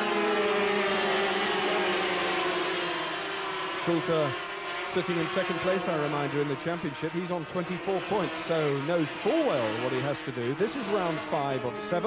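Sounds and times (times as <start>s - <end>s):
racing motorcycles at high revs: 0.0s - 12.0s.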